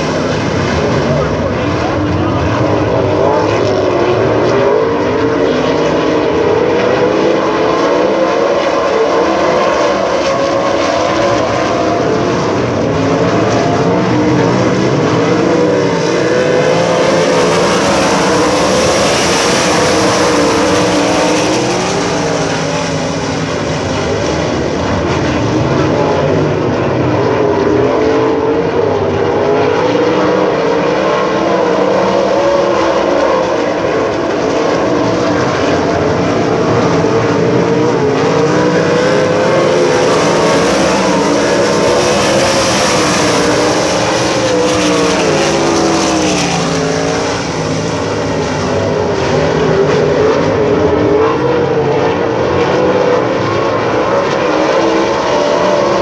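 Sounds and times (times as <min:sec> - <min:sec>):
sprint car engines racing: 0:00.0 - 0:56.0.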